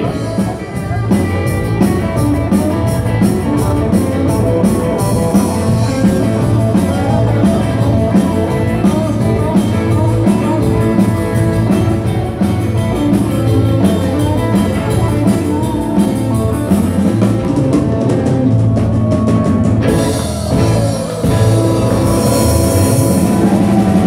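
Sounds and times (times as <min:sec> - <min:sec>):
drum kit dance beat: 0:00.0 - 0:24.0
electric guitars: 0:00.0 - 0:24.0.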